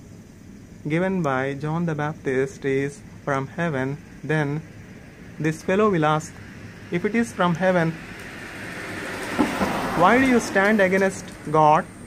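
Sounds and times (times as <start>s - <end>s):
car driving past: 6.4s - 11.5s.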